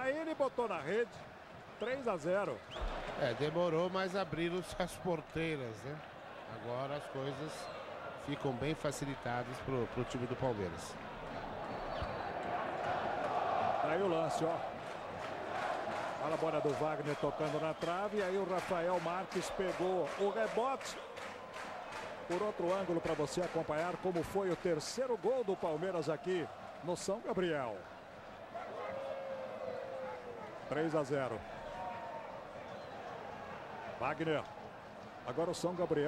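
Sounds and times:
stadium crowd din: 0.0 - 36.0.

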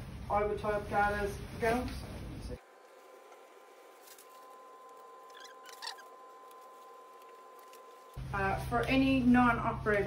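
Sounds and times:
gown and gloves rustling: 0.0 - 8.2
faint electrical hum: 0.0 - 10.0.

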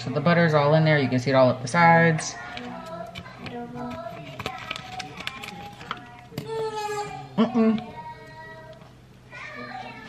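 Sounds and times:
quiet voices: 2.0 - 10.0
plastic packaging crinkling: 2.5 - 6.5.

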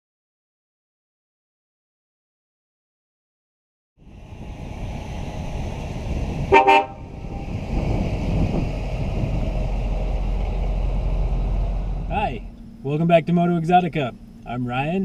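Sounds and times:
car engine driving past: 4.0 - 14.5
car horn honk: 6.5 - 7.0.

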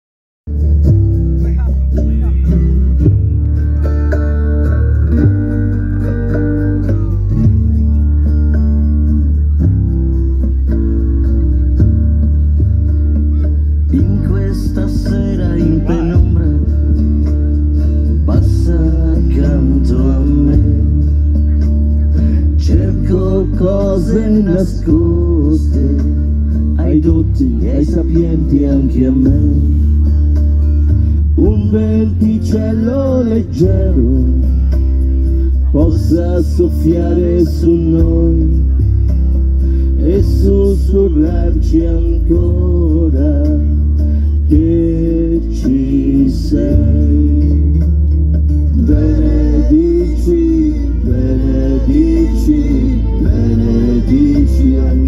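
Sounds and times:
slow song with bass and guitar: 0.5 - 55.0
person singing: 10.3 - 55.0.

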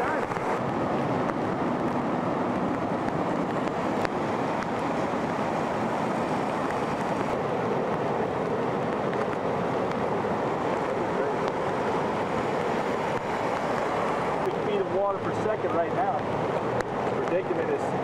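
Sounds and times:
floodwater rushing: 0.0 - 18.0.

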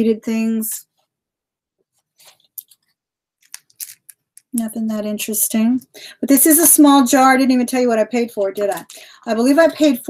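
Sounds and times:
jewelry clicking and rustling: 2.2 - 4.6.

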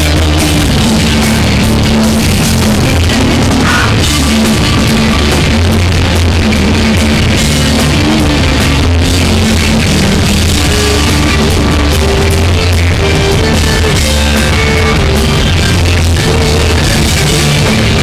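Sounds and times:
distorted electric bass: 0.0 - 18.0
distorted electric guitar: 0.0 - 18.0
driving drum kit: 0.0 - 18.0.

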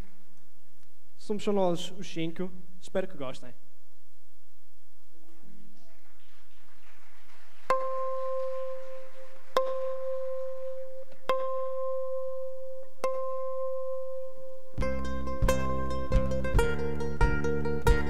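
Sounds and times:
plucked string high note: 9.6 - 18.0.

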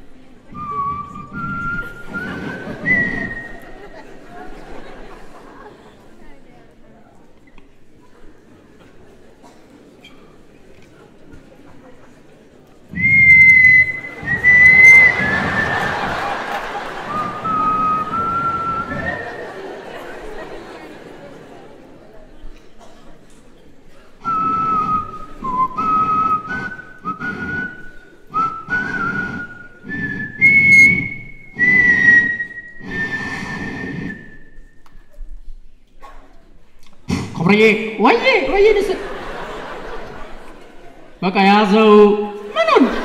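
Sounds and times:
crowd chatter: 0.0 - 43.0
person whistling: 0.5 - 3.8, 12.9 - 19.6, 24.2 - 34.9.

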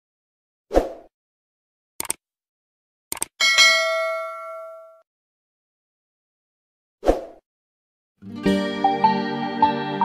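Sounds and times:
bright bell ding: 3.4 - 5.0.

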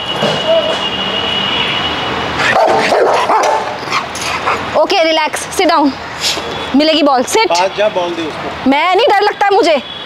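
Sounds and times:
dog barking excitedly: 2.4 - 4.8.

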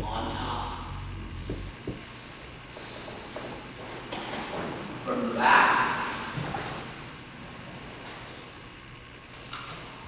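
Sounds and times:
soft thumps: 1.2 - 2.1.

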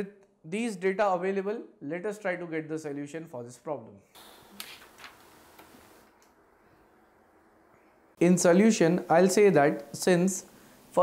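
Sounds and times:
soft hiss: 4.1 - 11.0.

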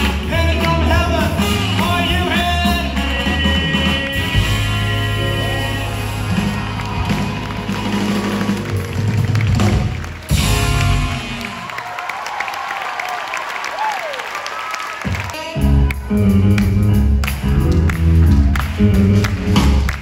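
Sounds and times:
live band with horns playing: 0.0 - 12.0, 14.5 - 20.0
audience applauding and cheering: 0.0 - 20.0.

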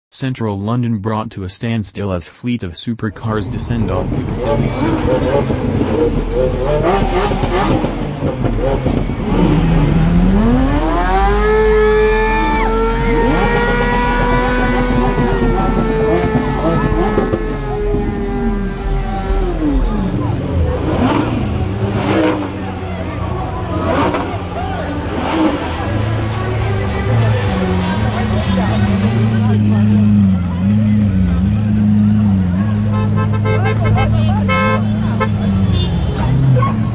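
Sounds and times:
large crowd voices: 0.3 - 36.9
supercar engine revving: 3.1 - 36.9.

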